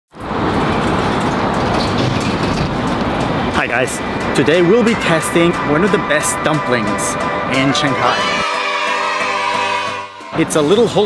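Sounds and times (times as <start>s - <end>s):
city street traffic: 0.1s - 11.0s.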